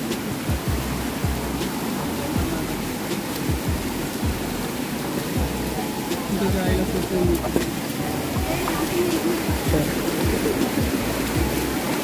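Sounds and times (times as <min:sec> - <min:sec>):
stream flowing over stones: 0:00.0 - 0:12.0.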